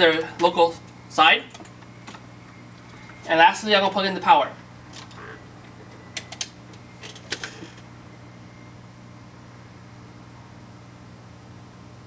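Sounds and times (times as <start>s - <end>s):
desktop computer hum: 0.0s - 12.0s.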